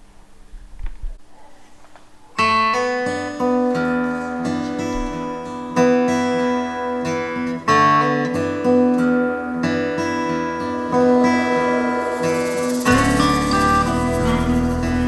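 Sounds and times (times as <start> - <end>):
acoustic guitar chords: 2.4 - 15.0
backing music with bass: 11.0 - 15.0.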